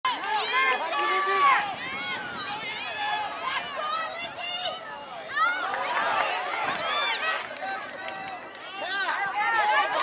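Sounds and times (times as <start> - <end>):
high voices shouting: 0.1 - 10.0.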